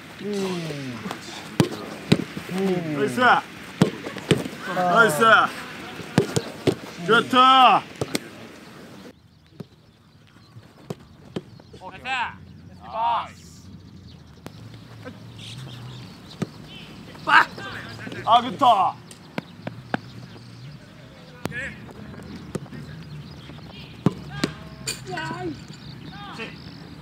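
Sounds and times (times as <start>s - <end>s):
player shouting: 0.2s - 1.5s, 2.5s - 3.5s, 4.6s - 7.9s, 11.8s - 13.6s, 17.2s - 19.0s
football being kicked: 0.5s - 2.8s, 3.7s - 4.6s, 5.8s - 7.1s, 7.7s - 8.4s, 16.3s - 16.8s, 23.7s - 24.8s.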